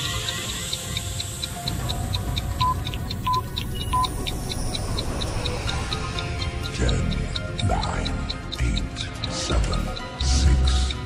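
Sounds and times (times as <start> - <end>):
clock ticking: 0.0 - 11.0
intro music: 0.0 - 11.0.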